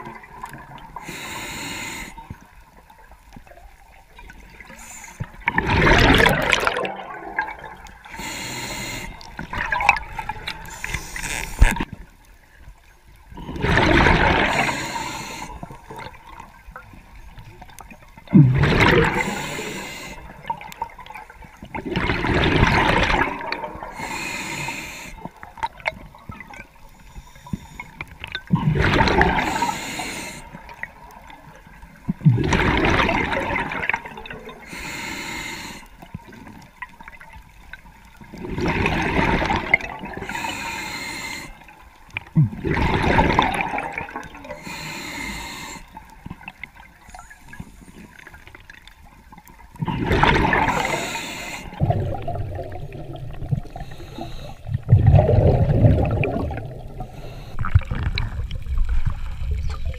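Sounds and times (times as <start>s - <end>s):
underwater breath bubbling: 0.0s - 2.6s, 4.5s - 12.0s, 13.3s - 16.8s, 17.4s - 31.3s, 32.1s - 36.6s, 38.2s - 48.6s, 49.7s - 59.9s
water sound: 0.0s - 59.9s.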